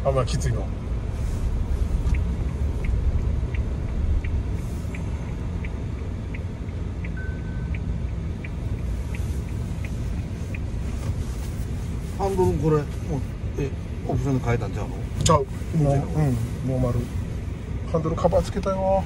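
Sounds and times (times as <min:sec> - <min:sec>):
car engine and road rumble: 0:00.0 - 0:19.0
light ticking: 0:01.6 - 0:12.9
brief high beep: 0:07.2 - 0:07.8.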